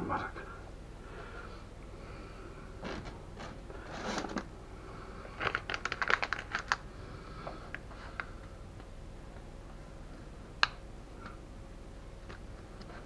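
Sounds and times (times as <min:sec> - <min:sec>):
hands rustling on baking paper: 0:02.8 - 0:04.5
sharp paper crinkling: 0:05.4 - 0:06.8.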